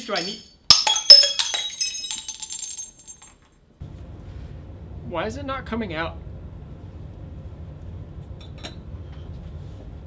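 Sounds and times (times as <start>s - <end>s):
glass test tubes clinking: 0.0s - 3.5s
low steady rumble: 3.8s - 10.0s.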